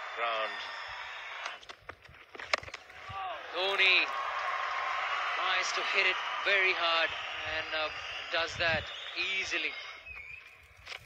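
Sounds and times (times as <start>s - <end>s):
crowd and field hiss: 0.0s - 1.6s, 3.0s - 10.0s.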